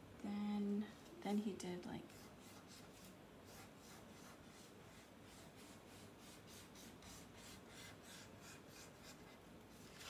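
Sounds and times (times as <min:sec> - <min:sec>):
marker scratching on paper: 0:02.1 - 0:10.0.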